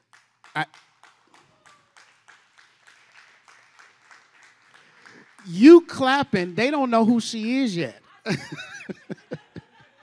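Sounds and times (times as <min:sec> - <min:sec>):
faint clapping: 0:00.0 - 0:05.6.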